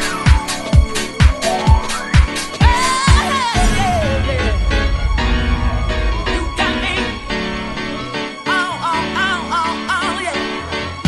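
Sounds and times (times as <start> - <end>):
house music: 0.0 - 10.3.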